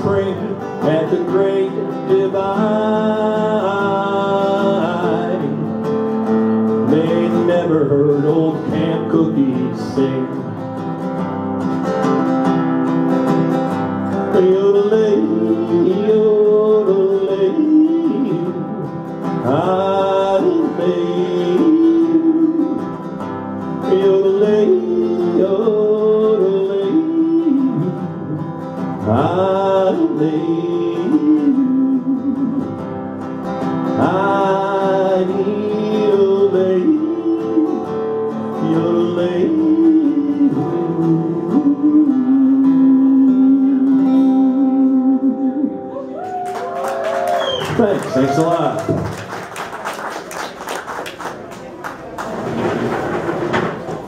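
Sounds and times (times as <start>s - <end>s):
man singing wordless melody: 0.0s - 10.8s, 14.1s - 46.0s
acoustic guitar strumming: 0.0s - 46.2s, 47.6s - 49.3s.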